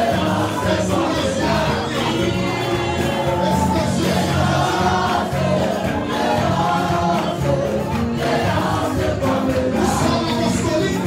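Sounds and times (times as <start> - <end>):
choir singing: 0.0 - 11.0
instrumental backing with bass: 0.0 - 11.0.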